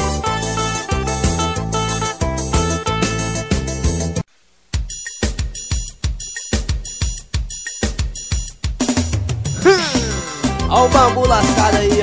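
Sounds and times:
drum kit steady beat: 0:04.7 - 0:12.0.

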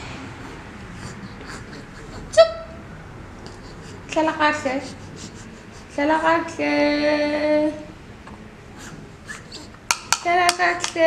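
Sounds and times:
wordless vocal sound: 0:00.0 - 0:02.6.

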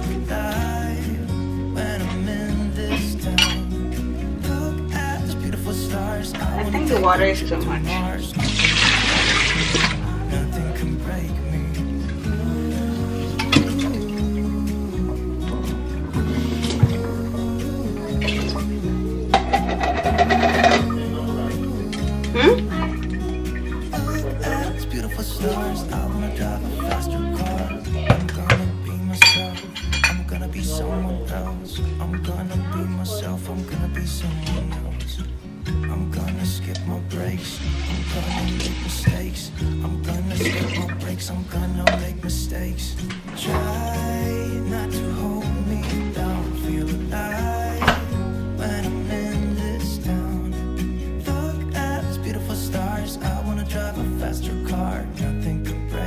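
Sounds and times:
background music: 0:00.0 - 0:56.0
metal can clinking on glass: 0:19.3 - 0:21.0, 0:29.2 - 0:30.3.

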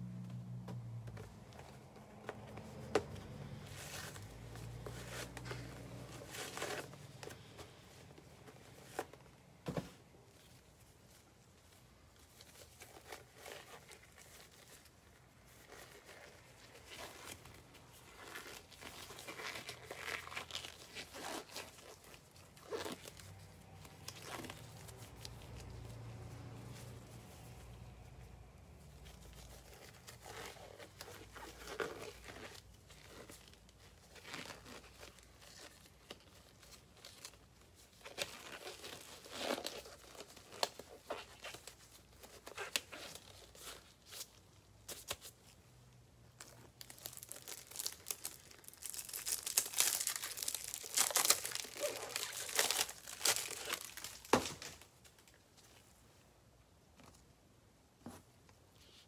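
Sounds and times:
plastic wrapping crinkling: 0:10.2 - 0:45.6, 0:46.3 - 0:56.0.

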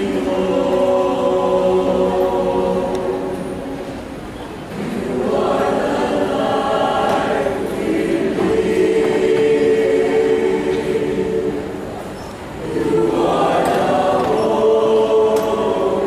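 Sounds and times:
mixed choir singing: 0:00.0 - 0:16.0.

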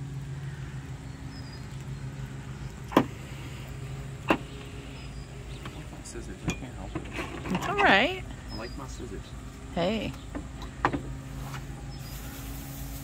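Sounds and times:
low mechanical hum: 0:00.0 - 0:13.0.

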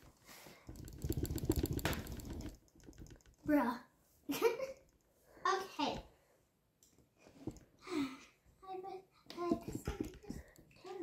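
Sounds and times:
rapid light clicks: 0:00.7 - 0:03.5
child's voice: 0:03.5 - 0:03.9, 0:05.4 - 0:06.1, 0:07.8 - 0:11.0.

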